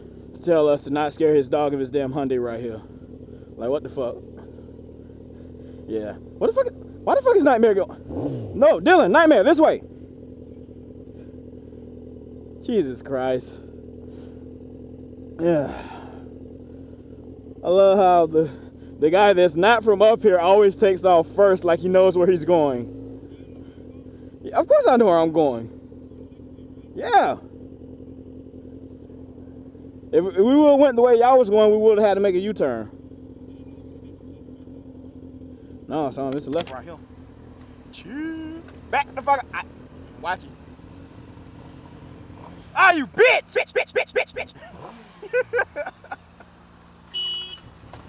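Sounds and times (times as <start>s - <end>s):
motorcycle engine idling: 0.0s - 48.0s
person speaking: 42.7s - 44.7s.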